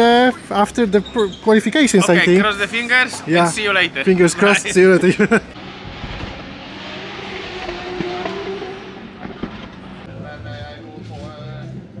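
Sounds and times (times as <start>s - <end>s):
outdoor noise: 0.0s - 12.0s
race car engines: 0.0s - 12.0s
music: 10.1s - 12.0s.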